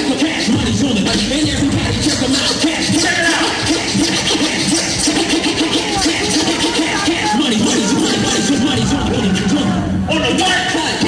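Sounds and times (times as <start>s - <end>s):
vinyl record scratching: 0.0s - 11.0s.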